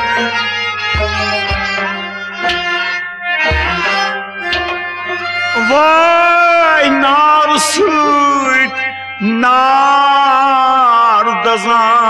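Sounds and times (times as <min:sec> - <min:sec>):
hand drum strokes: 0:00.0 - 0:02.9, 0:03.5 - 0:05.5
harmonium and bowed strings: 0:00.0 - 0:12.0
long sliding melodic note: 0:00.0 - 0:12.0.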